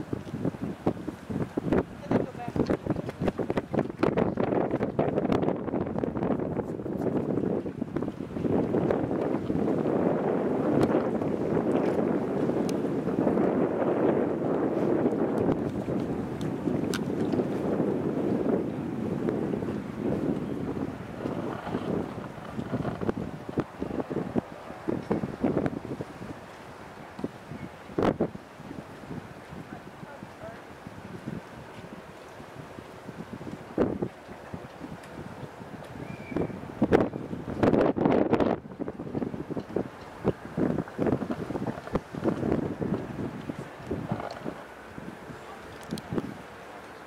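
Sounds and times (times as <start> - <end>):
wind blowing across microphone: 0.0 - 47.0.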